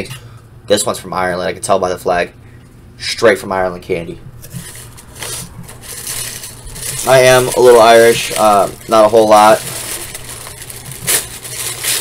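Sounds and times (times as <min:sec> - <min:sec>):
cardboard box rustling and scraping: 0:04.5 - 0:12.0.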